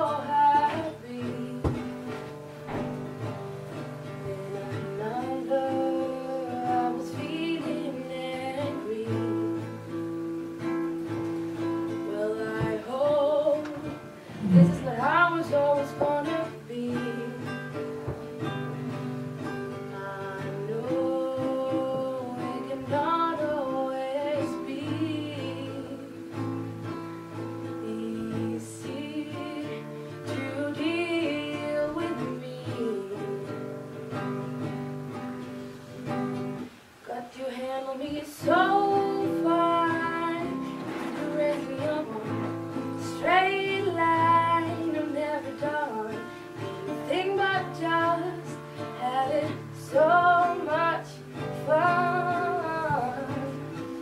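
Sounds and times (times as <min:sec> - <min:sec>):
girl singing: 0:00.0 - 0:34.8, 0:36.1 - 0:54.0
acoustic guitar: 0:00.0 - 0:54.0.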